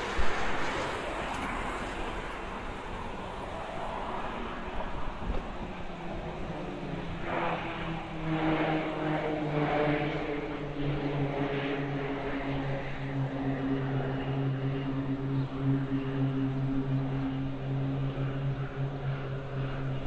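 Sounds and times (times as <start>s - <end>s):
propeller planes droning overhead: 0.0s - 20.0s.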